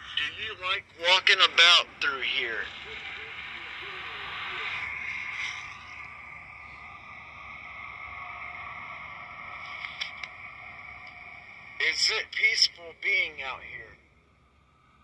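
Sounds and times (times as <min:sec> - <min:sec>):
recording hiss from small speaker: 0:00.0 - 0:15.0.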